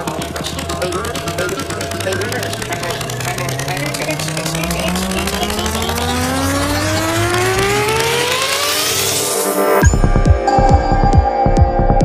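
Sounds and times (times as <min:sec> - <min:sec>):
synth riser gliding upward: 0:00.0 - 0:09.8
fast pulsing beat: 0:00.0 - 0:10.5
steady bass: 0:00.0 - 0:12.0.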